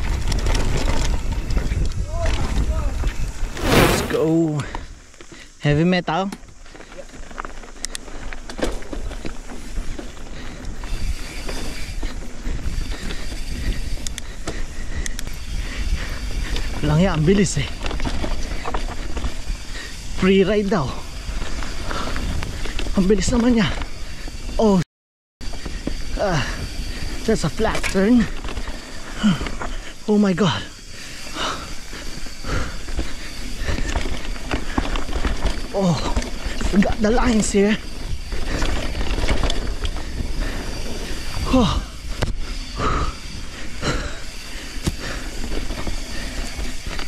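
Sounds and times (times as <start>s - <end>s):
bike clicking and rattling: 0.0s - 3.6s, 4.6s - 24.8s, 25.4s - 47.0s
wind buffeting microphone: 0.0s - 5.1s, 9.0s - 24.6s
tyres rolling over dirt: 0.0s - 24.5s, 25.4s - 47.0s.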